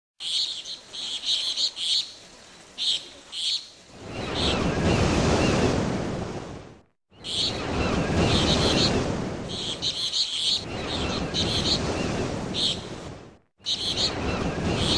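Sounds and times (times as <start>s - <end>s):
small birds chirping: 0.2s - 4.6s, 7.1s - 8.9s, 9.5s - 12.8s, 13.6s - 14.9s
waves washing in: 0.7s - 14.9s.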